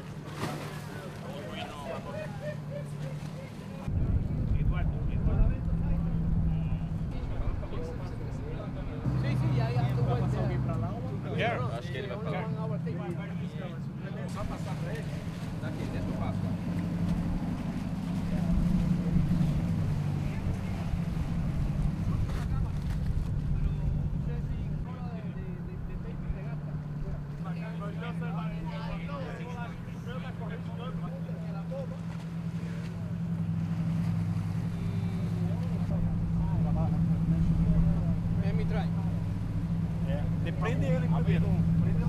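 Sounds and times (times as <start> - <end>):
boat engine humming: 0.0 - 42.0
faint voices: 0.0 - 42.0.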